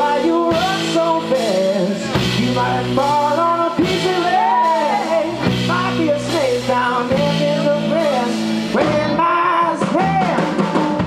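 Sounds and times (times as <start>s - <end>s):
bending lead guitar melody: 0.0s - 11.0s
drum kit: 0.0s - 11.0s
electric guitars: 0.0s - 11.0s.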